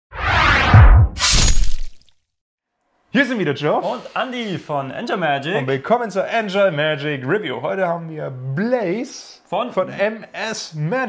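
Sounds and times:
deep booms: 0:00.2 - 0:01.2
bright shattering crash hit: 0:00.4 - 0:02.0.

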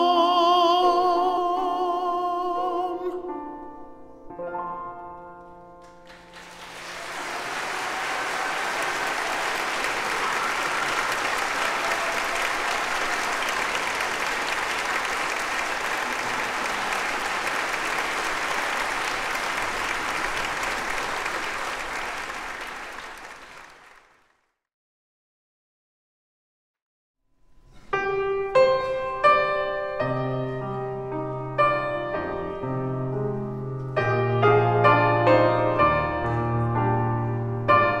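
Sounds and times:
piano notes: 0:00.0 - 0:07.3, 0:27.5 - 0:38.0
audience applauding: 0:05.8 - 0:24.4.

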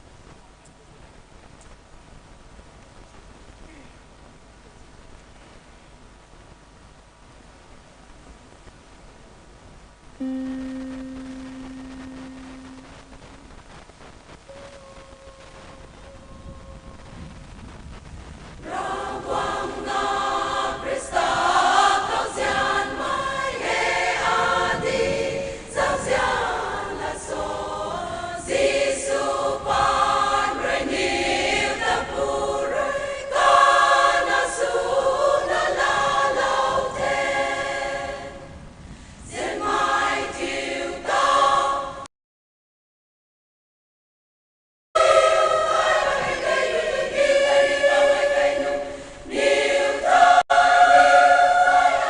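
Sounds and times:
women's choir singing: 0:18.6 - 0:38.5, 0:39.2 - 0:42.1, 0:45.0 - 0:52.0.

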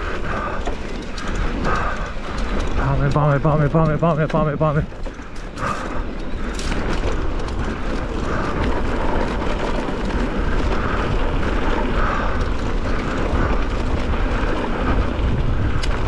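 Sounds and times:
tyres on loose dirt and gravel: 0:00.0 - 0:16.0
wind rumble on microphone: 0:00.0 - 0:16.0.

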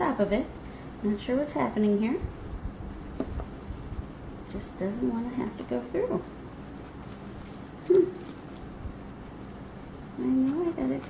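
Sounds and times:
foil and cardboard rustling: 0:01.3 - 0:11.0.

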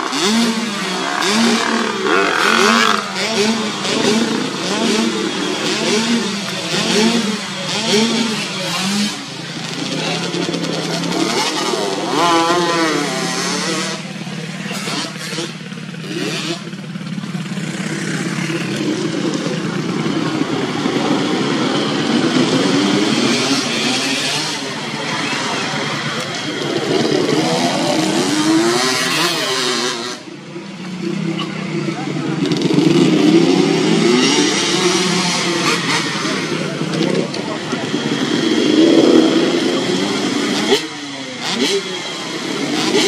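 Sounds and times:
dirt bike engines revving: 0:00.0 - 0:43.0.

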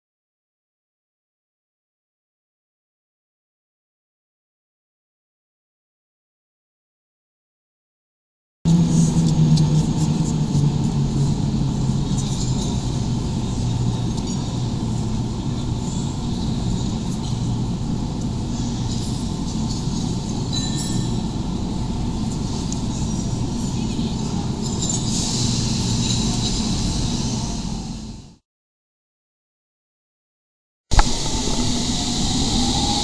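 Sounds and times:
electric train hum: 0:08.7 - 0:28.4, 0:30.9 - 0:33.0.

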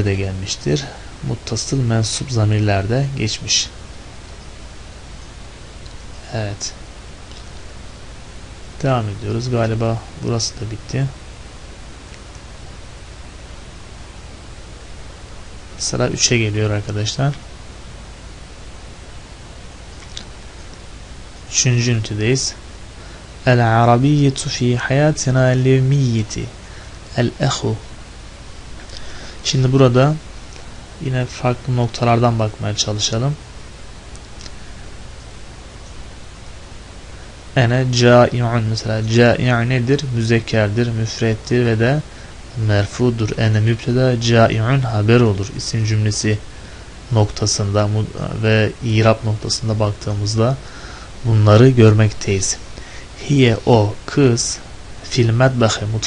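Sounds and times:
steady recording hiss: 0:00.0 - 0:56.0.

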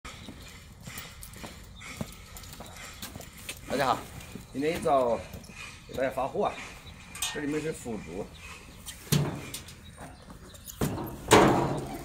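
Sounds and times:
footsteps on concrete: 0:00.1 - 0:06.8, 0:08.8 - 0:11.2.

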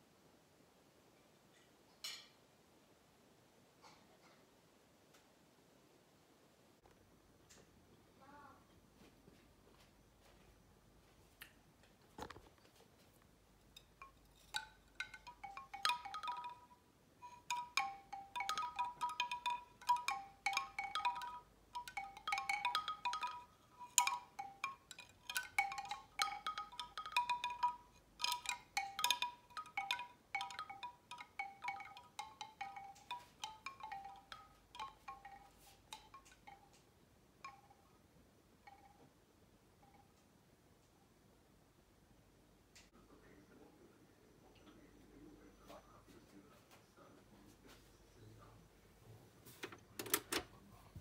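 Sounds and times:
bamboo wind chime clattering: 0:13.7 - 0:37.9, 0:38.6 - 0:39.1.

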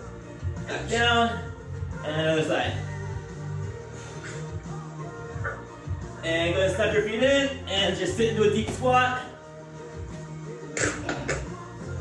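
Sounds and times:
background music with bass line: 0:00.0 - 0:12.0.

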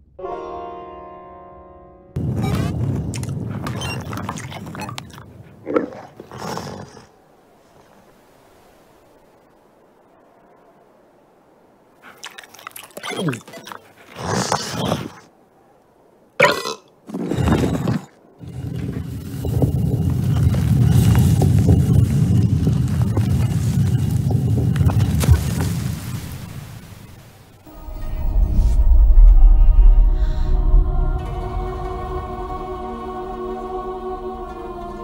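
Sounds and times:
gurgling burp-like grunt: 0:12.9 - 0:15.2, 0:16.4 - 0:16.9
long low rumble: 0:27.7 - 0:35.0.

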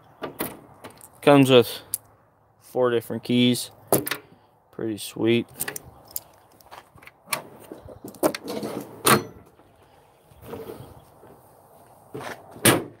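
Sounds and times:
metal drawer sliding shut: 0:08.2 - 0:09.4.

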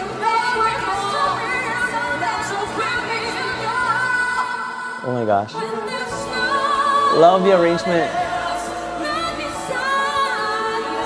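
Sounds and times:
instrumental backing music: 0:00.0 - 0:11.0
woman singing pop song: 0:00.0 - 0:11.0.

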